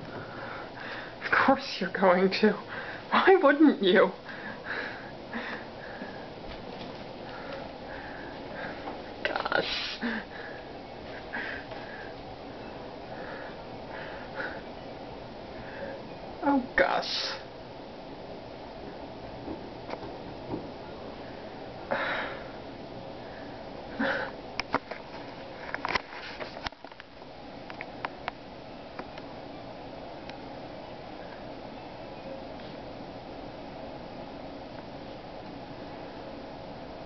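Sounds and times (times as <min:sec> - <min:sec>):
soft sniffing breaths: 0:07.2 - 0:12.2.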